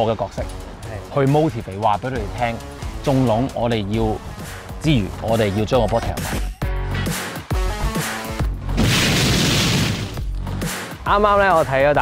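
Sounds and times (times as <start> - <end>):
background music: 0.0 - 12.0
boom sound effect: 8.8 - 10.2.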